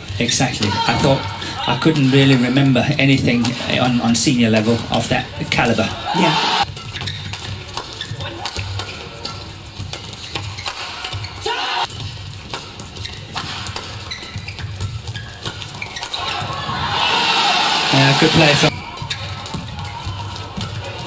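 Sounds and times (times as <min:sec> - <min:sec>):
rackets striking shuttlecock: 0:00.5 - 0:16.8, 0:18.6 - 0:21.0.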